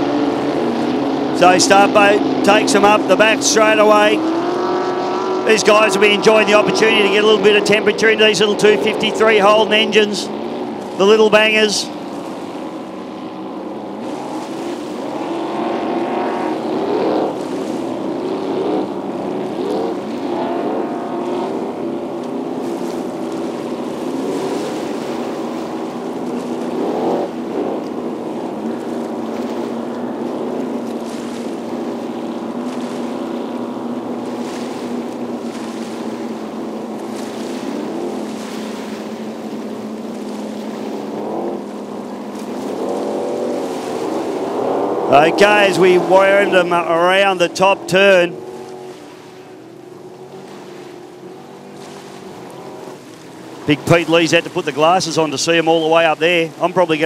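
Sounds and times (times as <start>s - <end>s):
powerboat engines revving: 0.0s - 57.0s.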